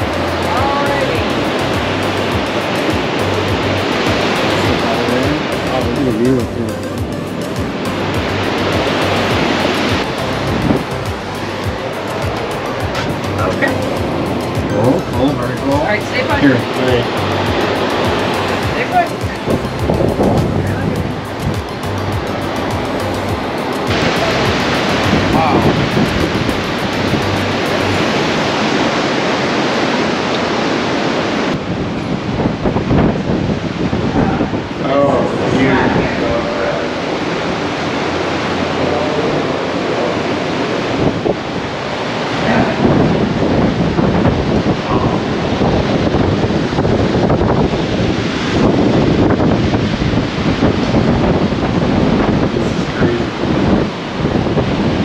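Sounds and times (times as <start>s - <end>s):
indistinct voices: 0.0s - 28.5s
music: 0.0s - 29.5s, 32.8s - 43.0s
ocean surf breaking on rocks: 0.0s - 55.0s
wind on microphone: 0.0s - 55.0s.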